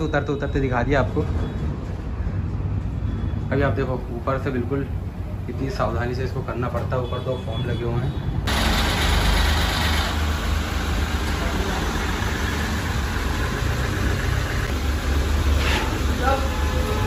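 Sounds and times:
diesel engine running at low speed: 8.5 - 17.0.

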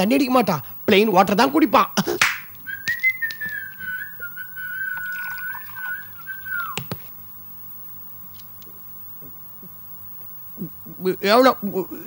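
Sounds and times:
person whistling long note: 2.6 - 7.0
water poured into glass: 4.9 - 6.2.

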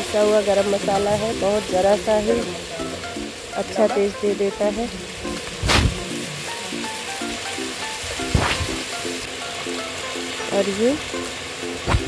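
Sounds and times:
bouncy instrumental music: 0.0 - 12.0
food sizzling in a pan: 0.0 - 12.0.

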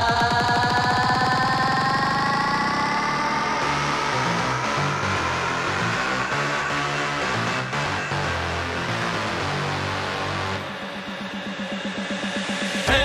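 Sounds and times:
choppy bass: 0.0 - 13.0
hardstyle electronic dance music: 0.0 - 13.0
rising synth line: 0.0 - 13.0.

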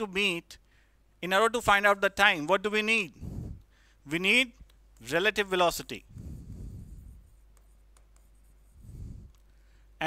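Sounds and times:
pen strokes on whiteboard: 5.9 - 9.4.

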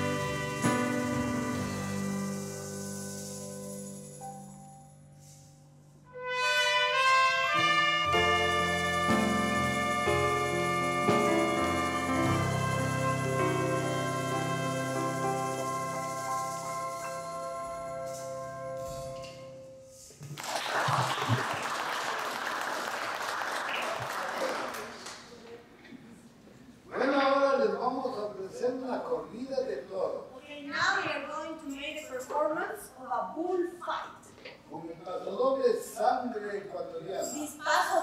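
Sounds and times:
solo trumpet playing: 0.0 - 2.9, 6.0 - 20.1
small audience applauding: 20.2 - 25.5.

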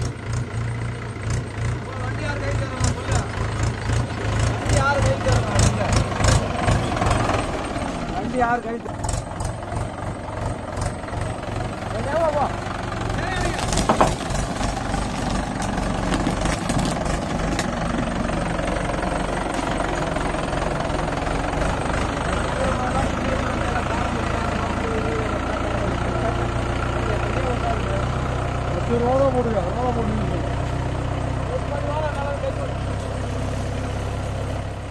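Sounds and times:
tractor diesel engine running: 0.0 - 34.9.

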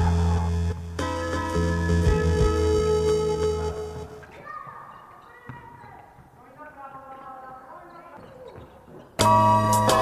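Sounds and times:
basketball bouncing on court: 3.9 - 6.4.

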